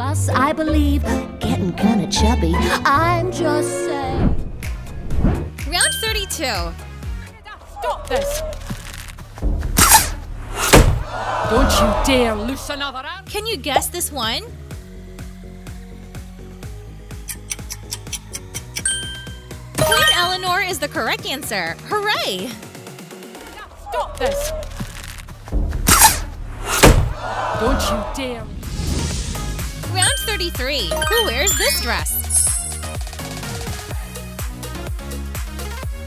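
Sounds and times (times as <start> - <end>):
loud hits with deep thud: 26.8 - 27.2.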